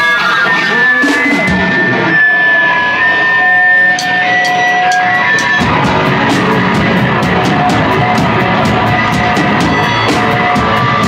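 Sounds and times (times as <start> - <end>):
electric guitar feedback: 0.0 - 11.0
drum hits: 4.0 - 11.0.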